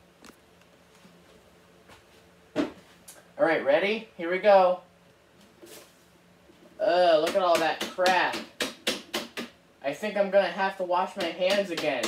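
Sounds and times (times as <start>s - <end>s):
person speaking: 6.7s - 8.6s, 9.8s - 12.0s.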